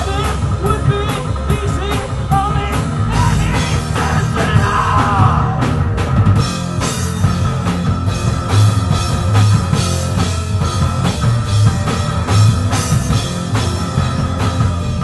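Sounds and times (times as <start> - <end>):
bass guitar: 0.0 - 15.0
distorted electric guitar: 0.0 - 15.0
drum kit playing: 0.0 - 15.0.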